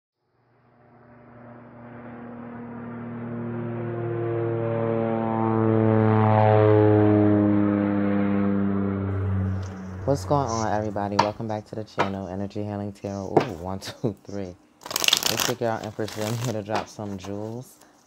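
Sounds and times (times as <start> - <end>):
deep droning hum: 0.9 - 11.7.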